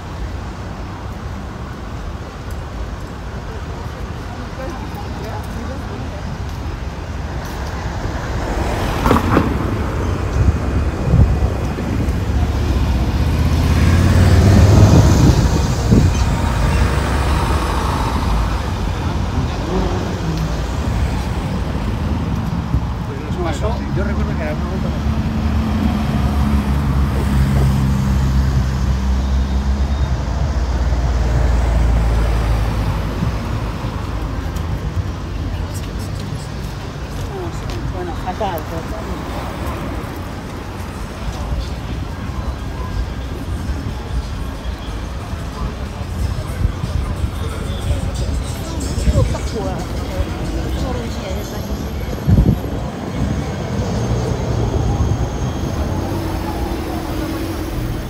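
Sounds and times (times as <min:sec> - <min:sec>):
cars driving past: 0:04.6 - 0:58.0.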